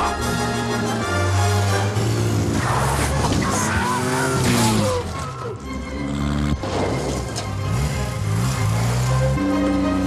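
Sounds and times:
motorcycle engines revving: 0.0 - 10.0
tyres skidding: 0.0 - 10.0.

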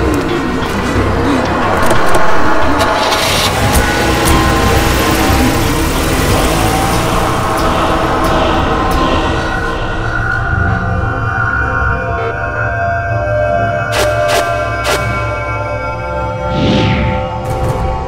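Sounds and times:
car engine running: 0.0 - 10.5
tense music score: 0.0 - 18.0.

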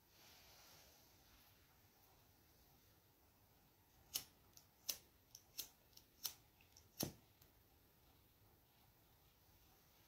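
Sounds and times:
lighter clicking: 4.1 - 7.2.

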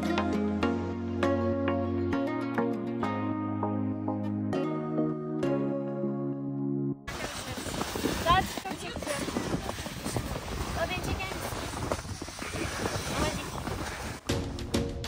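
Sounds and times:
background music: 0.0 - 7.1, 14.2 - 15.0
voices: 7.1 - 11.7
wind rumbling on microphone: 7.1 - 14.5.

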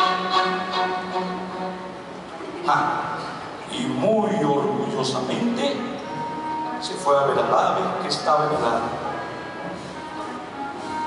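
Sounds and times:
symphony orchestra playing: 0.0 - 11.0.

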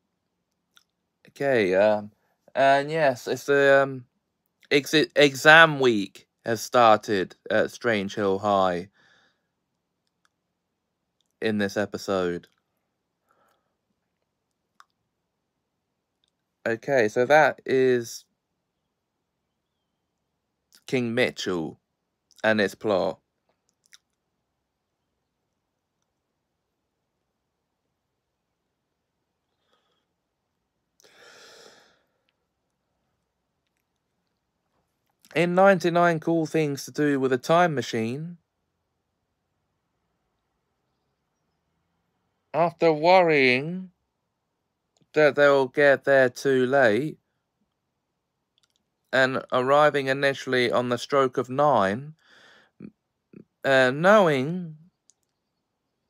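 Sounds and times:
person speaking: 1.3 - 4.0, 4.7 - 8.9, 11.4 - 12.5, 16.7 - 18.2, 20.8 - 23.2, 35.2 - 38.4, 42.6 - 43.9, 45.1 - 47.2, 49.2 - 52.2, 52.8 - 54.9
spoken word: 1.3 - 4.0, 16.7 - 18.2
faint mouth clicks: 23.6 - 24.2
faint click: 55.0 - 55.4.

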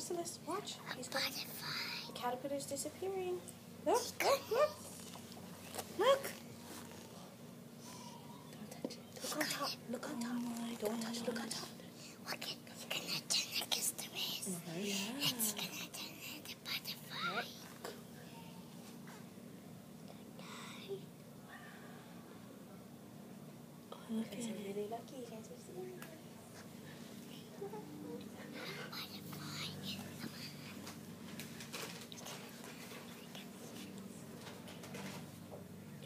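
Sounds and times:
hushed whispering voices: 7.0 - 18.6, 20.1 - 22.4, 26.4 - 30.9, 32.2 - 34.3
children whispering: 7.8 - 17.6.

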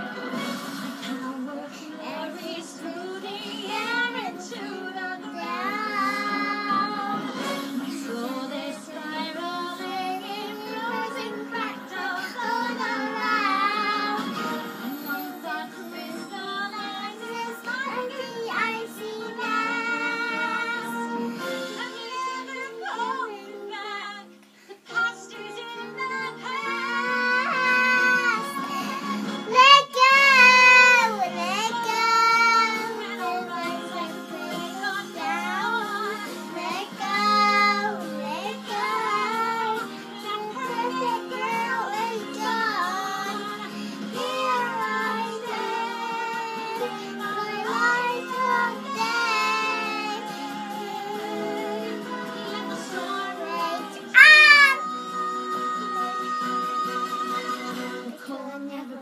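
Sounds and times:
background music: 0.0 - 59.0
girl singing: 1.2 - 24.2, 24.9 - 57.4, 58.0 - 59.0.

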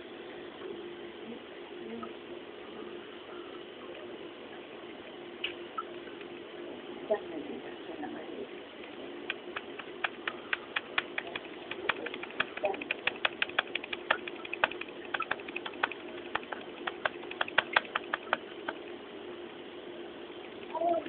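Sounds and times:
calculator key clicks: 9.3 - 18.5.

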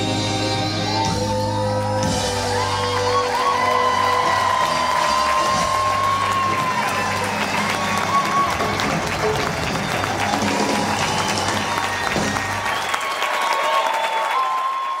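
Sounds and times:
live band playing: 0.0 - 12.8
audience applauding and cheering: 0.1 - 15.0.

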